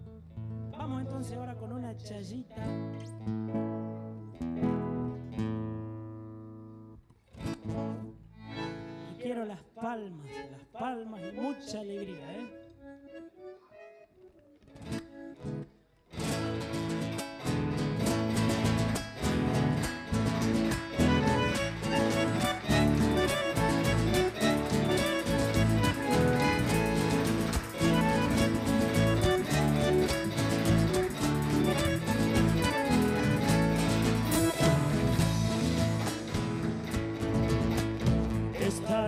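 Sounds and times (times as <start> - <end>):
folk band playing: 16.2 - 39.0.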